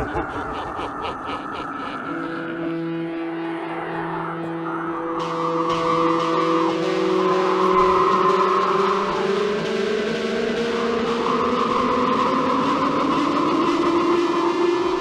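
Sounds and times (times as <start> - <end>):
rumbling noisy wash: 0.0 - 14.7
sustained droning tones: 0.0 - 15.0.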